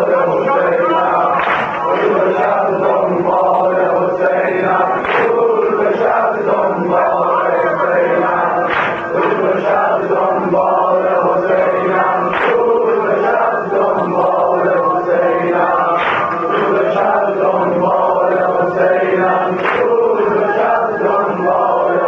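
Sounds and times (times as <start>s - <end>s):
men chanting in unison: 0.0s - 22.0s.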